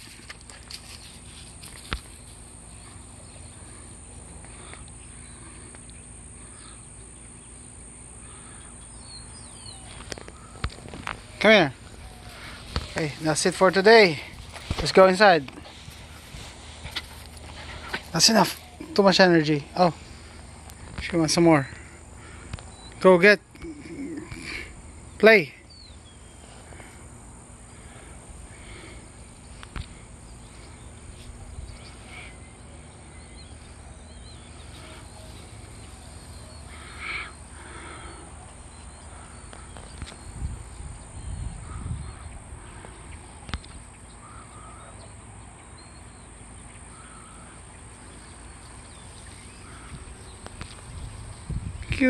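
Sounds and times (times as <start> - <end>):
faint animal or bird calls: 2.7 - 13.4, 27.8 - 40.4, 41.2 - 50.8.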